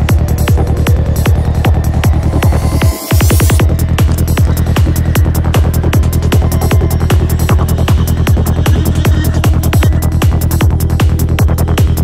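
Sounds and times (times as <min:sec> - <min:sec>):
kick drum: 0:00.0 - 0:12.0
rolling bass: 0:00.0 - 0:12.0.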